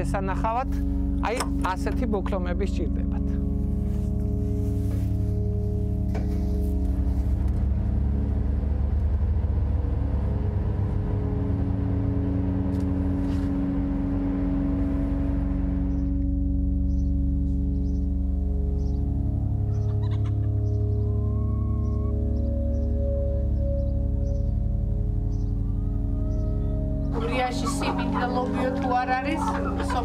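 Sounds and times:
background music sustained tones: 0.0 - 30.0
car driving: 0.0 - 30.0.

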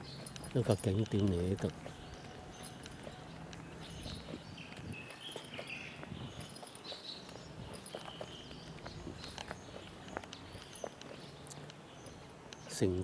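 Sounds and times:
faint chirps: 0.0 - 13.0
footsteps on concrete: 0.0 - 13.0.

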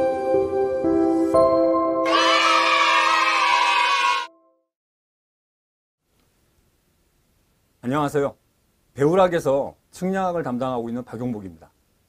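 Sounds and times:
music jingle held chord: 0.0 - 3.5
voices cheering and shouting: 2.1 - 4.3.

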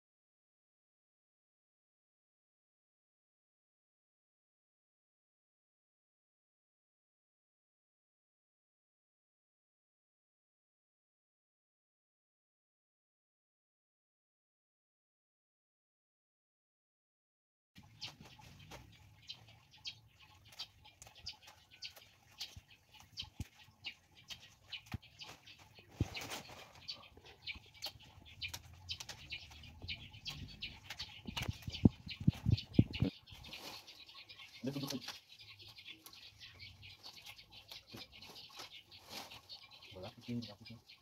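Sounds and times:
leaves rustling and crackling: 17.8 - 35.3, 36.9 - 40.0.

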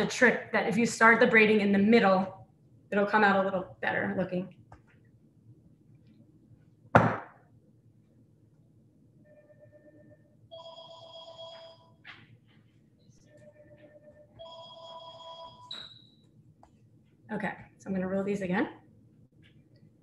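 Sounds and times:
phone ringtone chimes: 9.3 - 11.9, 13.3 - 15.7.

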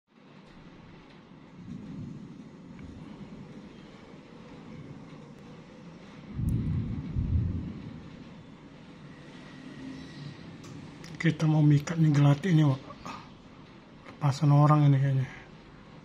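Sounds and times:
low outdoor rumble: 0.1 - 16.0
wind buffeting microphone: 0.6 - 9.2.

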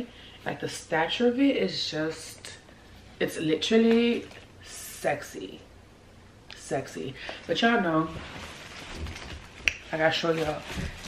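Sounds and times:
woman speaking: 0.0 - 2.6, 3.2 - 5.7, 6.5 - 8.3, 9.9 - 11.0
handling and movement sounds: 7.3 - 11.0.

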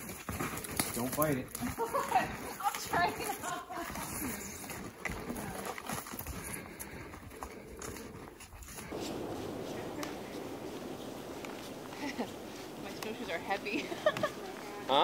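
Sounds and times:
snowshoes crunching through snow: 0.0 - 15.0
steady low hiss: 8.8 - 15.0.

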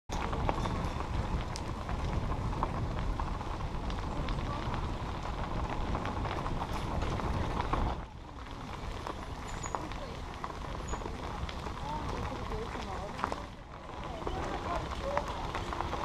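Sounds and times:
bike rattling: 0.1 - 16.0
tyres crunching on gravel: 0.1 - 16.0.

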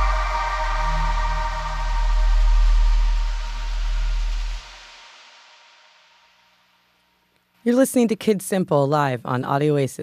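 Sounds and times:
deep electronic bass: 0.0 - 5.6
held mid-range tones: 0.0 - 7.0.

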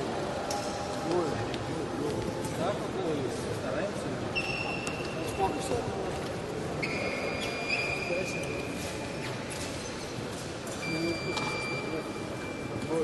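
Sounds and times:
murmur of voices: 0.0 - 13.0.

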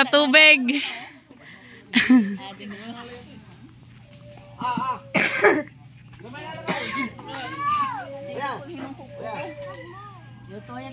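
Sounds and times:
person coughing: 5.1 - 5.7, 6.7 - 7.2.

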